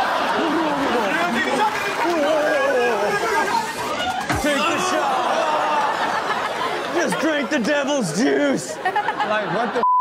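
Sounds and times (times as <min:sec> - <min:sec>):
people talking over each other: 0:00.0 - 0:09.9.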